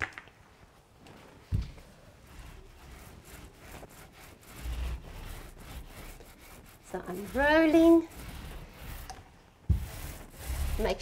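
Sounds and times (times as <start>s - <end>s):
paint roller rubbing: 1.1s - 11.0s.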